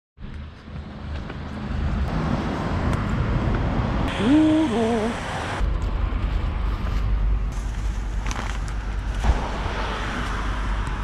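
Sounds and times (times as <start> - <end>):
passing cars: 0.4 - 6.8, 8.9 - 11.0.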